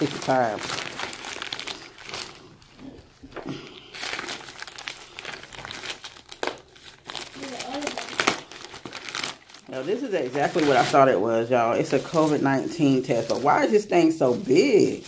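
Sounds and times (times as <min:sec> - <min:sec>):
plastic mailer bag crinkling: 0:00.0 - 0:15.0.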